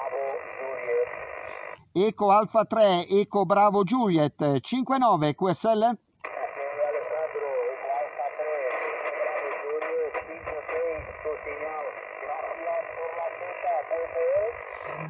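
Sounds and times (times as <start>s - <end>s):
radio static: 0.0s - 2.8s, 6.2s - 15.0s
voice over radio speaker: 0.0s - 15.0s.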